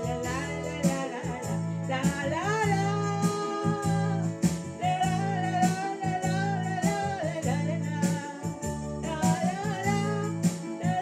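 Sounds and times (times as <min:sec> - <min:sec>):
electronic keyboard: 0:00.0 - 0:11.0
woman singing: 0:00.0 - 0:11.0.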